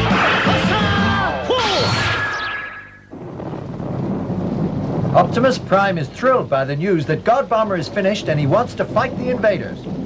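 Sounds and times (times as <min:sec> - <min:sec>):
music: 0:00.0 - 0:02.2
rain hissing: 0:02.8 - 0:10.0.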